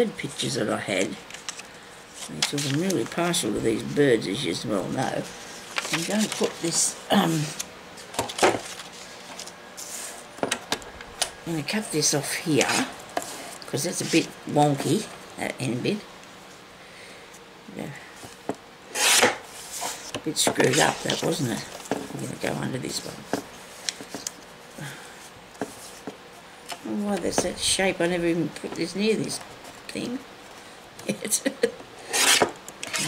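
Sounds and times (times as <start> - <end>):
paper rustling: 1.0 - 4.0, 4.9 - 10.2, 19.0 - 22.3
paper sliding: 8.3 - 10.2, 18.9 - 21.8.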